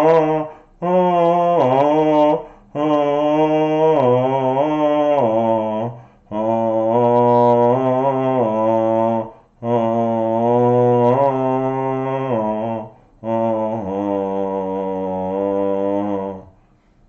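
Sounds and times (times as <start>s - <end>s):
man chanting low notes: 0.0s - 16.6s
man breathing: 0.4s - 0.8s, 2.4s - 2.8s, 5.9s - 6.3s, 9.3s - 9.6s, 12.9s - 13.2s, 16.5s - 17.0s.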